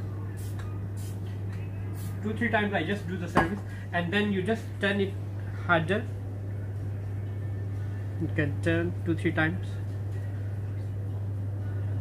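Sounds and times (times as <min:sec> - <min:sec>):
low electrical hum: 0:00.0 - 0:12.0
aerosol can spraying: 0:00.4 - 0:01.3, 0:01.9 - 0:02.3.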